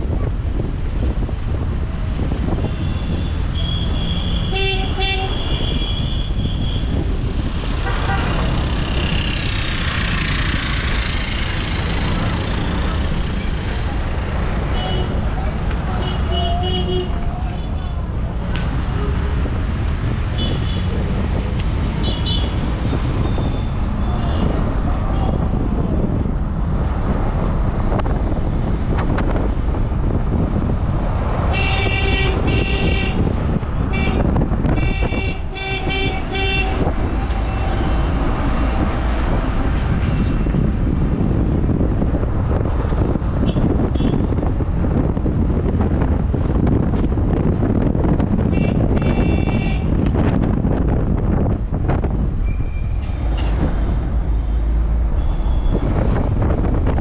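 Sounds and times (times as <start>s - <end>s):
vehicle engine and road rumble: 0.0s - 57.0s
vehicle horns tooting: 2.6s - 7.0s, 15.9s - 18.1s, 22.0s - 22.6s, 31.5s - 38.2s, 43.4s - 44.4s, 48.4s - 50.0s, 54.4s - 56.0s.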